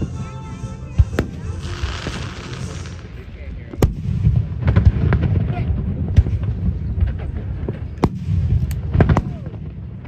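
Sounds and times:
fireworks bursting: 0.0 - 10.0
low rumble of booms: 2.0 - 10.0.

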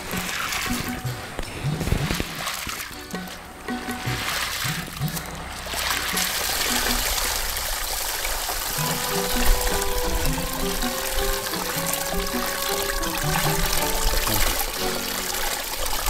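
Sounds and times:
background music: 0.0 - 16.0
water splashing and pouring: 0.0 - 16.0.

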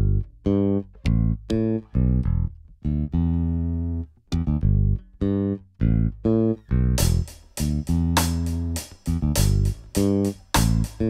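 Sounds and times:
synthesizer bass line: 7.0 - 11.0.

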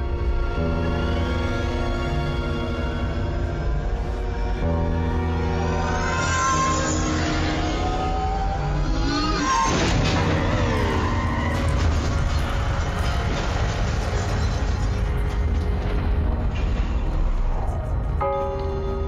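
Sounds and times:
dark cinematic score music: 0.0 - 19.0.

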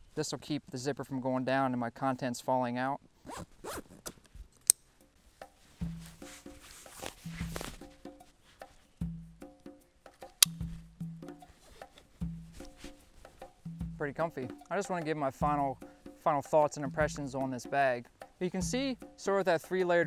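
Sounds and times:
backpack zipper rasping: 3.2 - 4.2, 5.8 - 8.1
percussive background music: 5.0 - 20.0.

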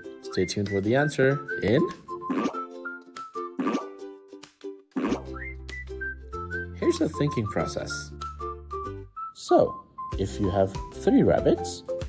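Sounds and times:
cheerful children's music: 0.0 - 12.0
short pop sound effects: 5.0 - 5.4.

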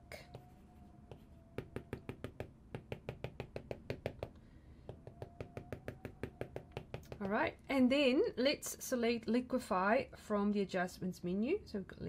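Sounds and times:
stylus tapping on glass screen: 1.1 - 7.3.

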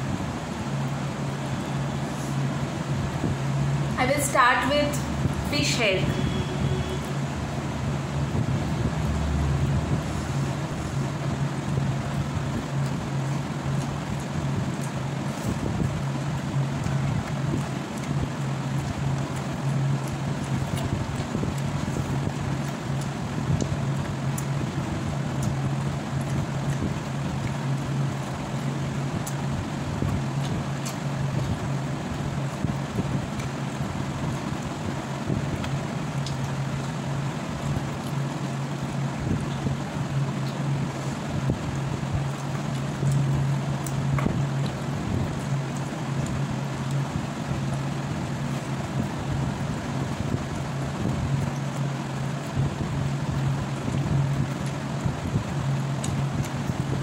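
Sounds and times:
low mechanical hum: 0.0 - 57.0.

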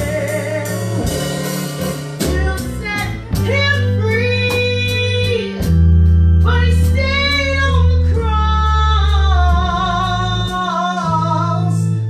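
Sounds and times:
woman singing: 0.0 - 1.4, 2.2 - 5.7, 6.4 - 12.0
electric keyboard chords: 0.0 - 12.0.

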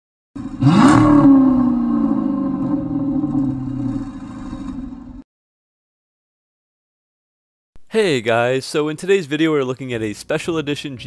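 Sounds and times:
car engine revving: 0.4 - 5.2.

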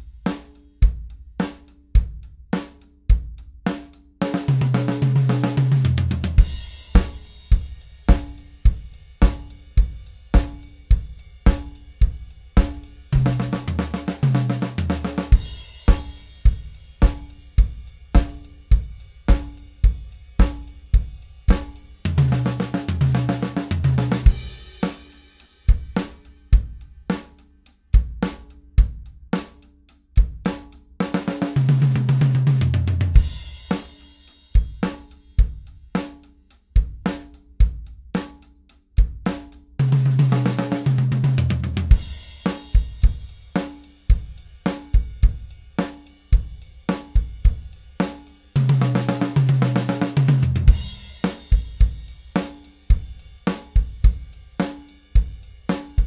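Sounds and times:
drum kit playing rock groove: 0.0 - 56.0.

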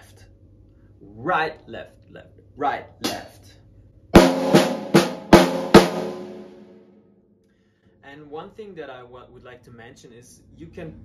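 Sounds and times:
drum kit played with sticks: 3.0 - 3.3, 4.2 - 6.7
drums and cymbals ringing: 4.2 - 6.8.

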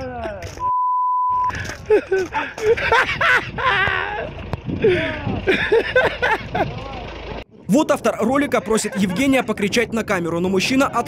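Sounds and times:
censor bleep: 0.6 - 1.5
voices: 3.6 - 11.0.

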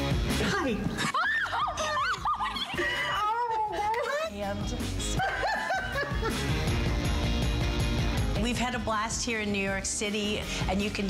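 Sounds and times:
background music: 0.0 - 11.0
woman laughing: 0.9 - 6.6.

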